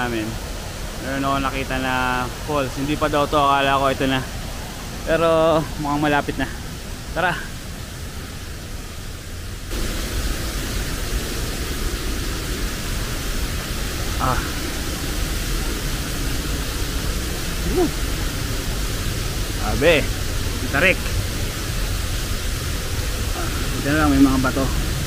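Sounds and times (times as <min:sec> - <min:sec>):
waterfall and river rushing: 0:00.0 - 0:25.0
person making short vocal sounds: 0:17.6 - 0:18.0.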